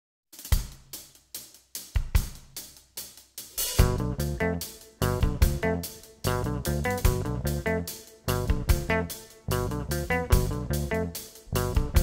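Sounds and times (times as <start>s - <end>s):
drum kit playing: 0.4s - 12.0s
bass guitar: 3.8s - 12.0s
guitar: 3.8s - 12.0s.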